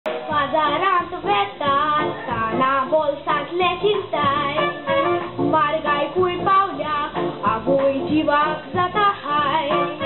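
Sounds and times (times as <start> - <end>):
boy singing into a microphone: 0.1 - 10.0.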